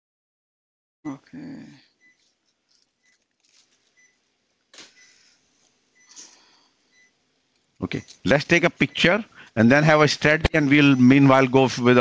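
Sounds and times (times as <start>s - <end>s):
patient monitor beeping: 1.1s - 12.0s.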